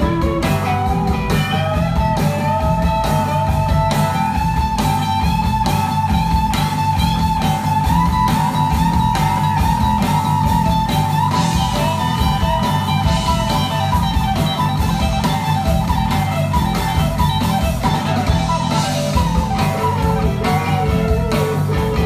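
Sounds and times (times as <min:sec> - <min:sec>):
blues-rock band playing: 0:00.0 - 0:22.0
electric guitar lead: 0:00.0 - 0:22.0.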